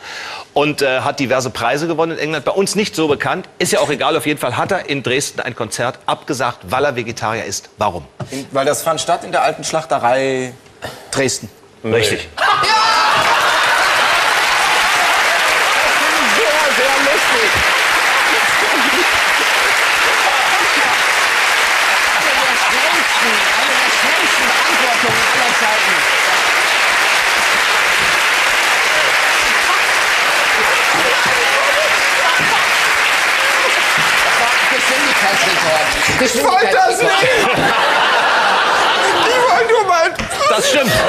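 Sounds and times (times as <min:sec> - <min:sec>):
audience applauding: 0:12.4 - 0:39.8.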